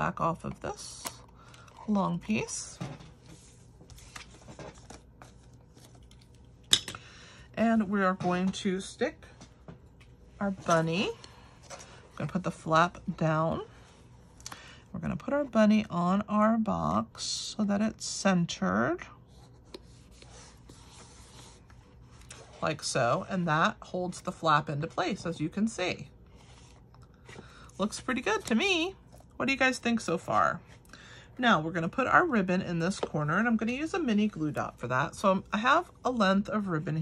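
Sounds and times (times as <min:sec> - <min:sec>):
paper rustling: 0:02.4 - 0:06.5.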